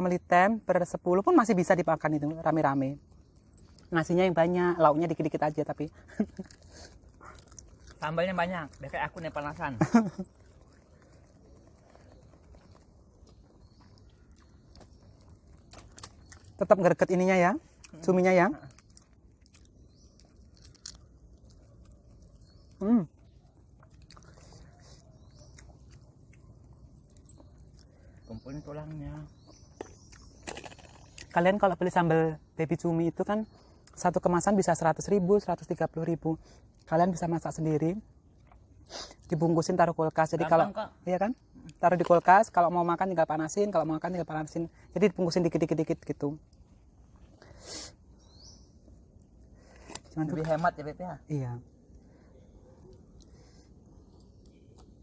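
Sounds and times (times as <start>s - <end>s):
bird chirp: 0.0s - 55.0s
outdoor background noise: 0.0s - 55.0s
people chewing: 3.0s - 4.2s, 5.6s - 17.0s, 17.6s - 31.4s, 38.2s - 39.4s, 51.8s - 55.0s
person breathy hiss: 47.5s - 48.0s.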